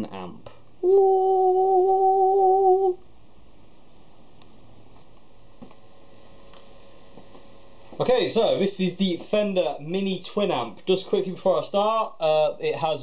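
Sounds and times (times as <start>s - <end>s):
person humming one note: 0.8s - 3.0s.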